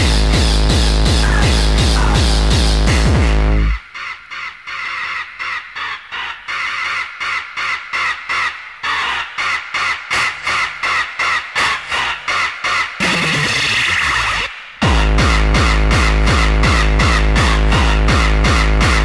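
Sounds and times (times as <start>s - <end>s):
fuller synth layer: 0.0s - 19.0s.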